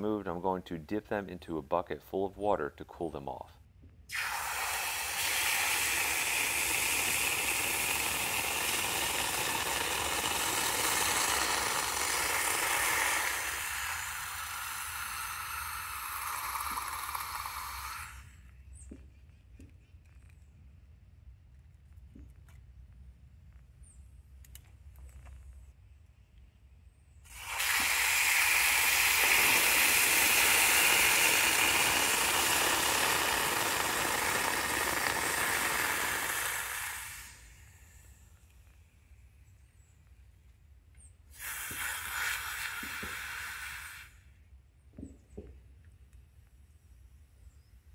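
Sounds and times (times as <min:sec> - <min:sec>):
hot metal hissing in water: 0:04.1 - 0:18.4, 0:27.3 - 0:38.1, 0:41.3 - 0:44.3.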